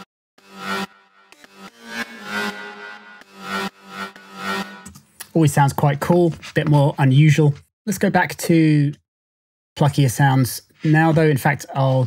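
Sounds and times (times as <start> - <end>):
synth lead notes: 0.0 - 4.9.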